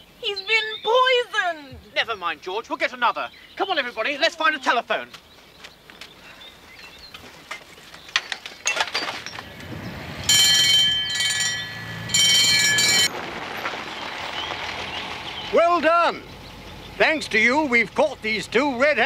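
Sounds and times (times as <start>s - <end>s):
electric bell ringing: 10.2s - 13.1s.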